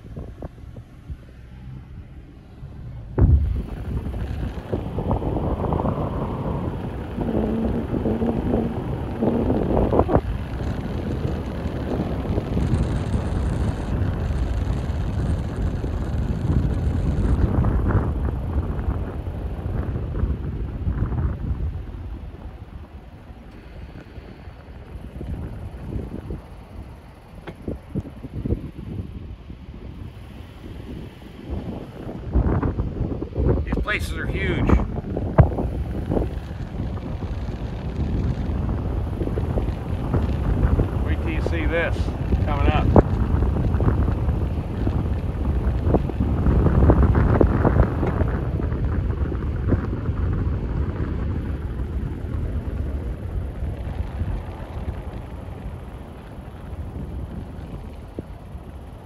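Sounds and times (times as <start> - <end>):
vehicle road noise: 0.0 - 59.0
wind buffeting microphone: 0.0 - 59.0.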